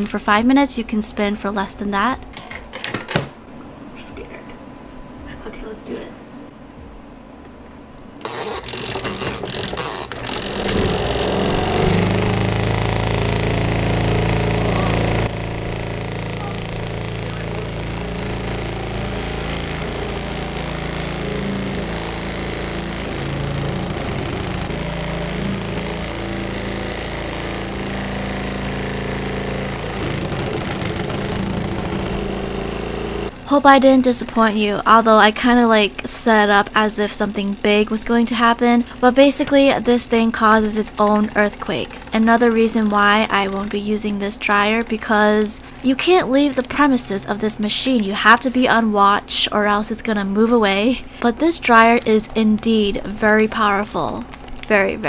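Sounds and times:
washing machine spin motor humming: 6.6s - 55.0s
machine shaking: 8.2s - 33.4s.

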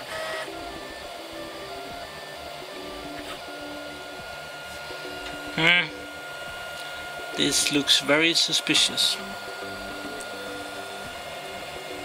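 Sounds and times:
fan hum: 0.0s - 12.0s
stepper motors whining: 0.0s - 12.0s.

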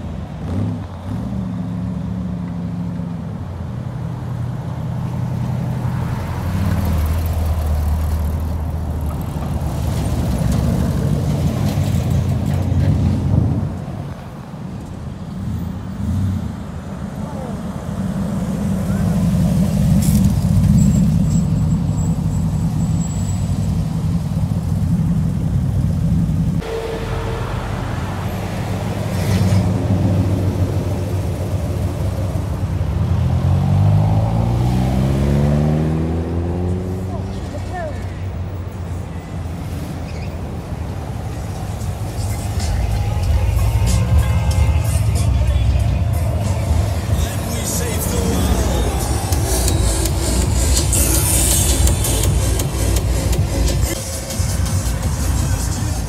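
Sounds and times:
cars driving past slowly: 0.0s - 56.0s
car engine accelerating: 15.4s - 37.9s, 41.5s - 56.0s.

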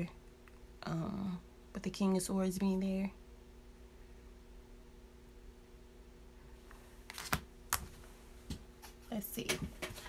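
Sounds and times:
faint room hum: 0.0s - 10.0s
cards clicking and tapping on table: 7.1s - 7.9s.

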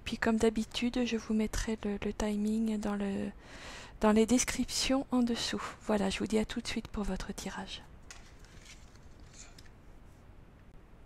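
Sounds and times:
cards laid on a table: 8.1s - 9.8s.

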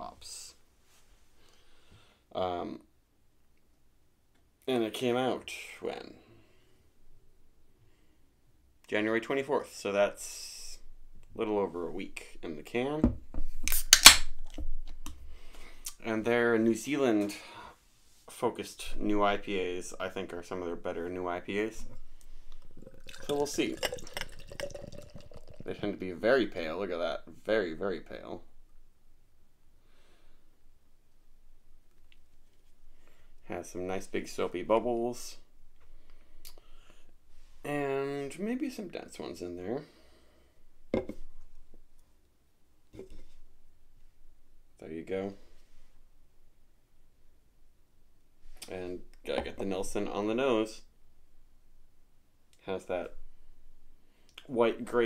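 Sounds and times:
beer can opening pop and hiss: 13.6s - 14.5s.

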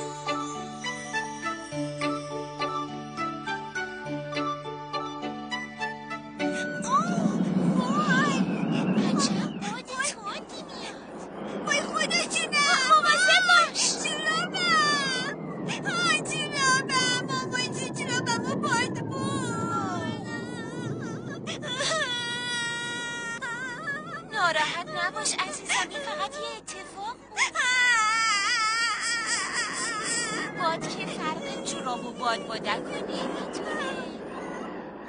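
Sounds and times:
high-pitched cartoon voice wailing: 22.8s - 34.2s.

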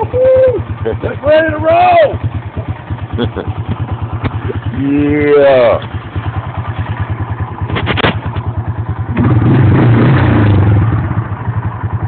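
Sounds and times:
atv engine idling: 0.0s - 12.0s.

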